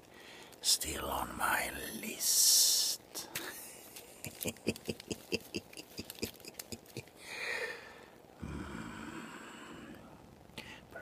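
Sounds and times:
breath hiss: 0.0s - 0.6s, 7.2s - 11.0s
man whispering: 0.5s - 3.7s, 8.3s - 11.0s.

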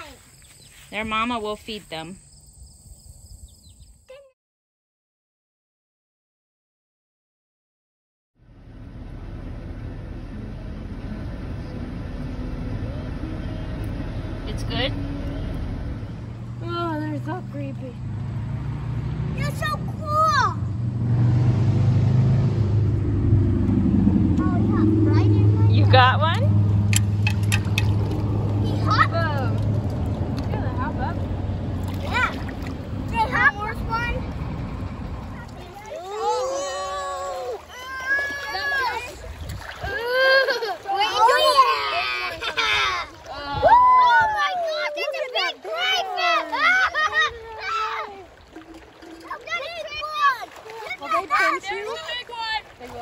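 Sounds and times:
children calling and shouting: 0.0s - 0.8s, 15.5s - 20.8s, 24.3s - 26.7s, 28.2s - 53.0s
wind: 0.0s - 4.4s, 8.4s - 53.0s
car cabin engine rumble: 8.4s - 18.4s, 22.5s - 35.9s.

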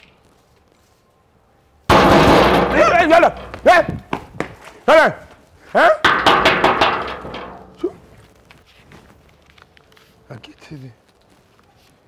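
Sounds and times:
rapid banging on a gate: 1.9s - 4.0s, 6.0s - 7.8s.

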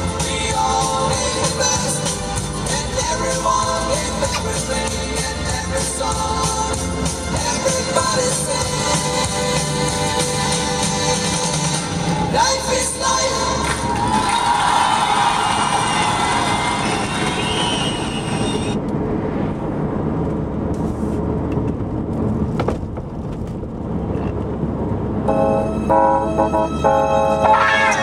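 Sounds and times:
music playing: 0.0s - 17.6s, 25.3s - 28.0s
car road and engine noise: 0.0s - 28.0s.

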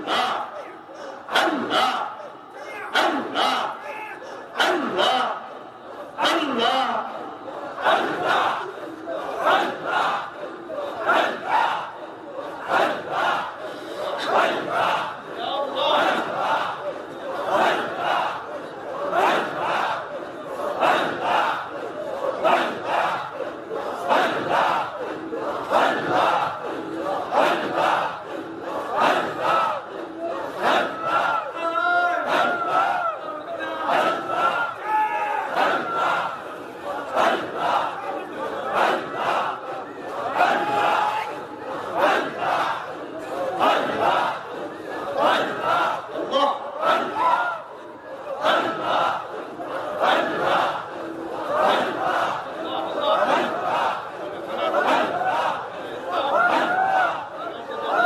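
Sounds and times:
men chanting over loudspeakers: 0.0s - 58.0s.

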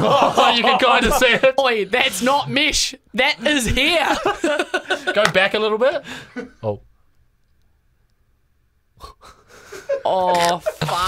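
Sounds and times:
person laughing breathily: 9.0s - 10.8s.

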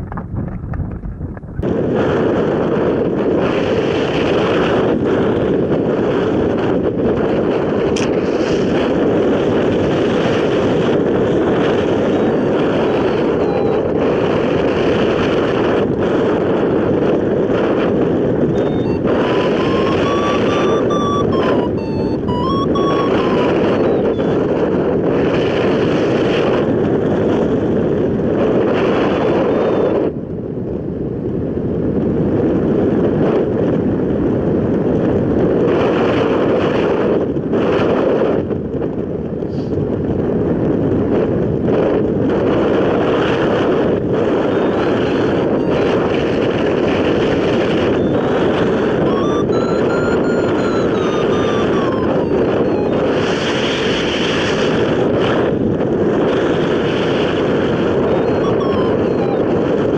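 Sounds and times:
wind buffeting the microphone: 0.0s - 59.9s.

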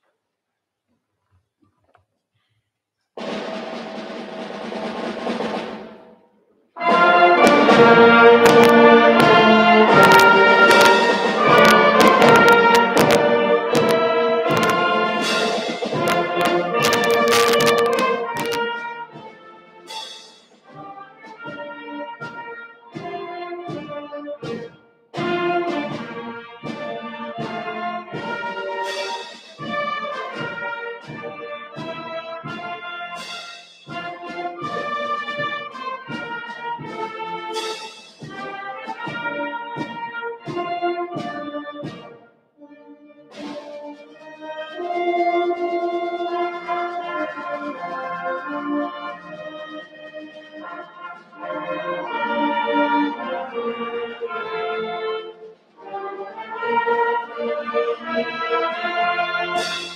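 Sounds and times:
concert band playing: 6.8s - 42.2s, 43.2s - 59.9s
sharp percussion strikes: 6.8s - 42.2s, 59.5s - 59.9s.

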